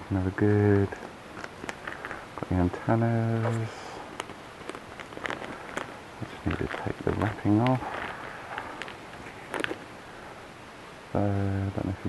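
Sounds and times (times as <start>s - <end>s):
plastic wrapping crinkling: 1.0s - 2.5s, 3.4s - 10.4s.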